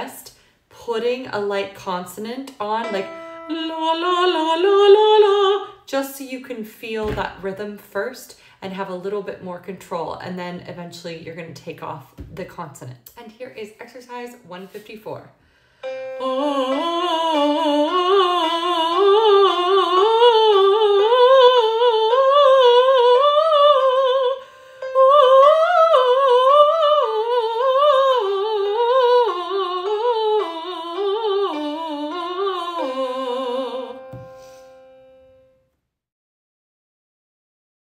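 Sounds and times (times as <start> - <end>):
quick breath: 15.4 - 15.8
woman singing vocal runs: 16.2 - 34.4.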